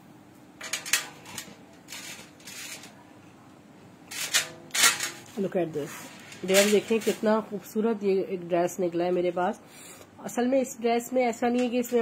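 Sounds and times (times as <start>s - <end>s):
plastic packaging rustling: 4.1s - 7.4s.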